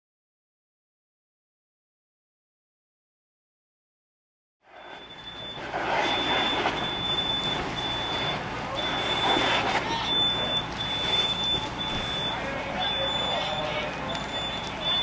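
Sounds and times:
high-pitched electronic beeping: 4.8 - 15.0.

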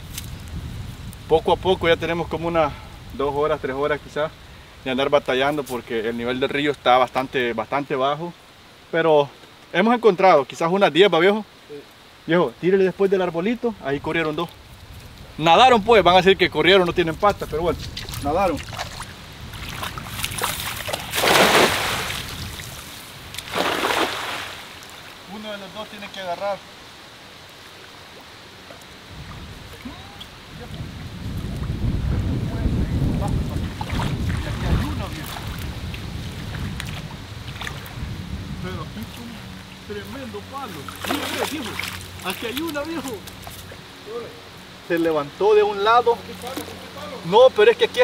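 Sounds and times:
low rumbling water: 11.5 - 48.0
net splashing into water: 18.0 - 22.7, 23.4 - 25.1, 40.8 - 42.8.

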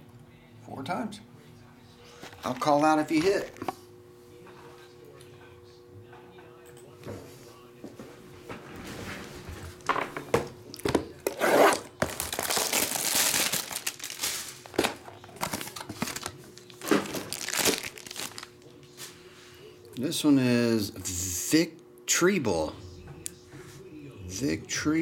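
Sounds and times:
plastic wrap crinkling and tearing: 11.3 - 18.8.

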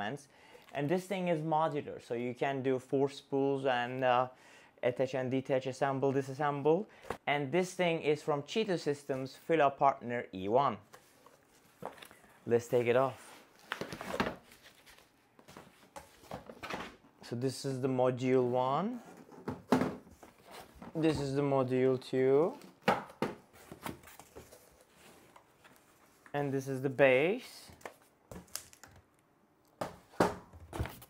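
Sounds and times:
cardboard and foam rustling: 10.9 - 17.0, 18.9 - 21.4, 23.4 - 26.4, 30.5 - 31.0.

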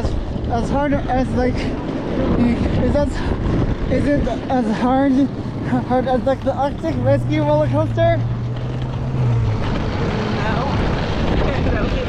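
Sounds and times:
steady low drone: 0.0 - 12.0
wind buffeting microphone: 0.0 - 12.0.

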